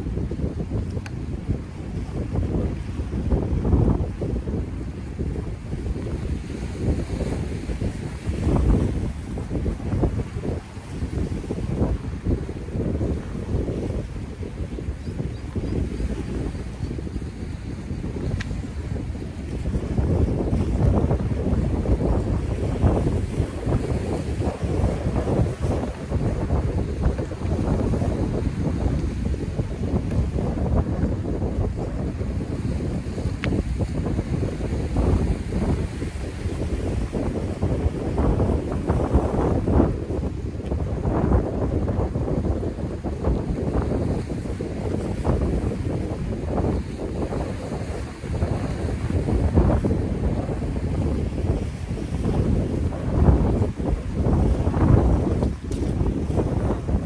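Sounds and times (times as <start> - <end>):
surf washing against seawall: 0.0 - 57.0
wind buffeting microphone: 0.0 - 57.0.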